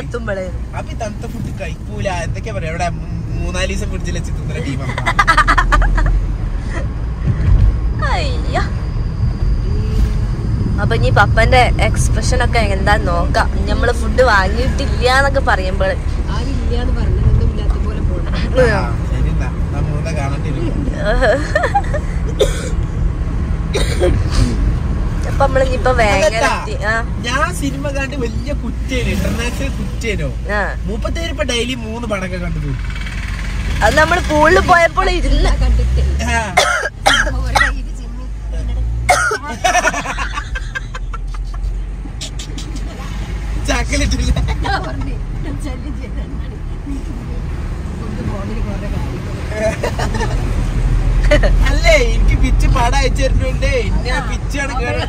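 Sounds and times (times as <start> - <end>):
road vehicle rumble: 0.0 - 55.0
people talking: 8.0 - 8.8, 10.8 - 21.8, 25.2 - 32.8, 33.8 - 36.4, 43.7 - 47.4, 51.3 - 55.0.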